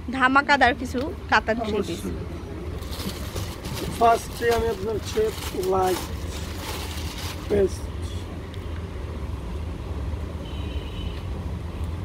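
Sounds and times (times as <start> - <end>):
low background rumble: 0.0 - 10.3
fabric rustling: 2.8 - 7.7.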